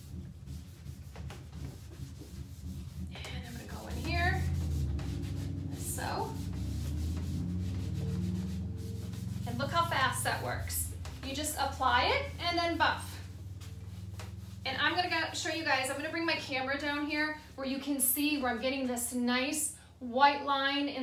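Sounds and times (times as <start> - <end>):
foam pad rubbing on wood: 0.0 - 18.7.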